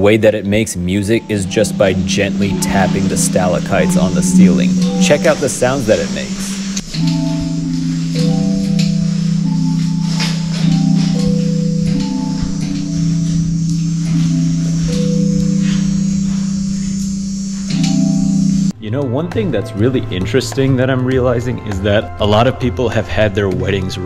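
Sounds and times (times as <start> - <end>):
chime-like tapped stalactite chords: 1.3 - 18.4.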